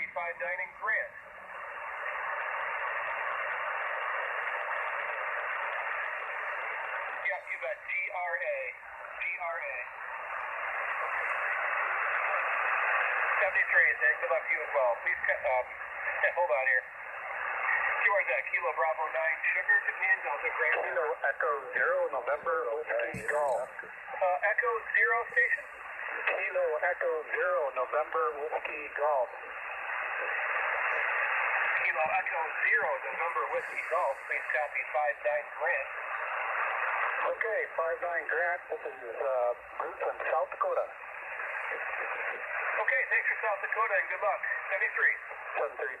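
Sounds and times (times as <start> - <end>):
radio receiver hiss: 0.0 - 46.0.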